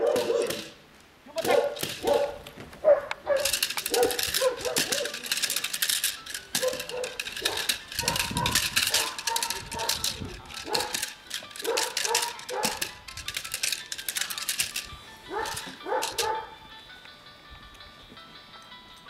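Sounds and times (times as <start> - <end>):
sharp clacks and rattling: 1.4 - 2.4, 3.1 - 16.3.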